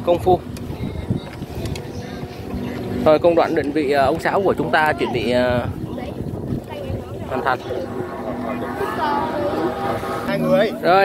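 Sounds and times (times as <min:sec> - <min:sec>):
voices talking: 0:00.0 - 0:11.0
kite flutes in the wind: 0:00.4 - 0:03.0, 0:04.8 - 0:10.4.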